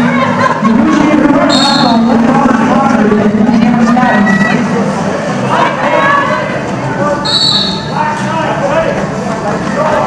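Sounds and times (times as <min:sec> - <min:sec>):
shouting voices: 0:00.0 - 0:10.0
referee's whistle: 0:01.5 - 0:02.0, 0:07.2 - 0:08.0.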